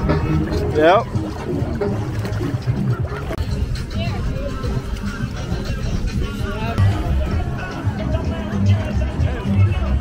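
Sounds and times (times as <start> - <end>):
background music: 0.0 - 10.0
water sloshing and trickling: 0.0 - 10.0.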